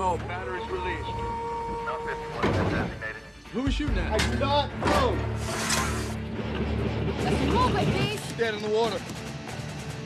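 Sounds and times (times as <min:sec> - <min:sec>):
film score music with low drone: 0:00.0 - 0:10.0.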